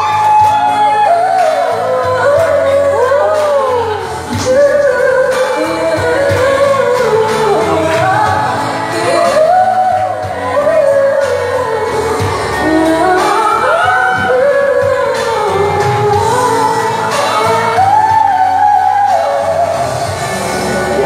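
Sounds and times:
musical accompaniment: 0.0 - 21.0
woman singing a pop ballad: 0.0 - 21.0.

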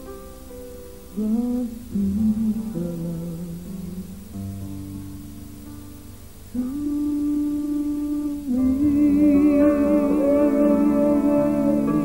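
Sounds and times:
woman humming a melody: 6.6 - 12.0.

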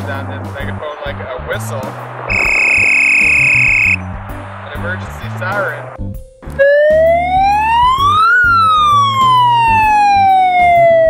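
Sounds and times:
megaphone siren wailing: 2.3 - 4.0, 6.6 - 11.0.

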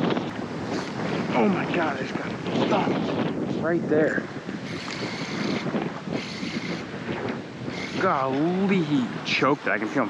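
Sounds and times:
wind buffeting microphone: 0.0 - 10.0
shallow water washing: 4.2 - 10.0.

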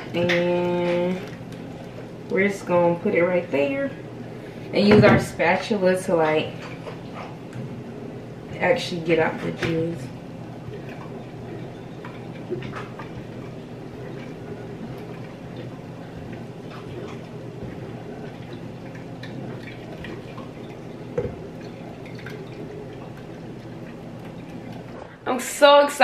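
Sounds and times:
juice dripping: 0.0 - 25.4
steady low hum: 0.0 - 26.0.

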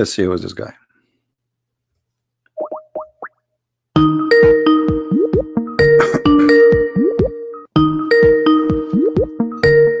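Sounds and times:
rising electronic bloops: 4.8 - 7.6.

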